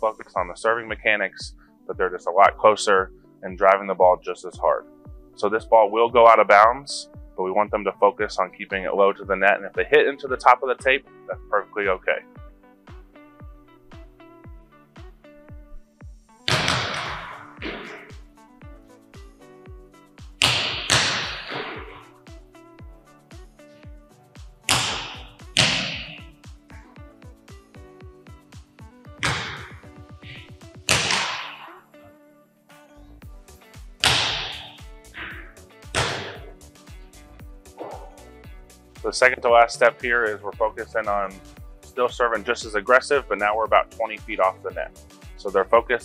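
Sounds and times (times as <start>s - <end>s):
music with steady beat: 0.0s - 32.0s, 32.7s - 46.0s
volleyball hits echoing in gym: 16.5s - 18.2s, 20.4s - 22.0s, 24.7s - 26.3s, 29.2s - 31.8s, 34.0s - 34.9s, 35.9s - 36.6s.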